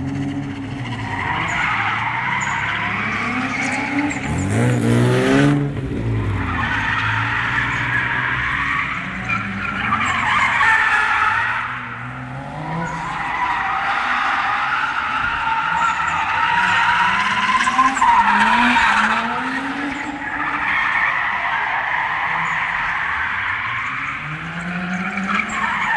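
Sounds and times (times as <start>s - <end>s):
car engine revving: 0.0s - 25.9s
tyre screech: 0.1s - 5.0s, 6.4s - 25.9s.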